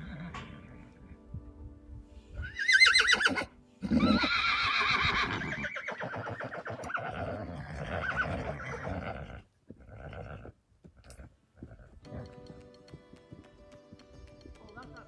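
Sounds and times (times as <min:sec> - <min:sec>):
horse whinnying: 0:00.0 - 0:00.7, 0:02.4 - 0:12.4.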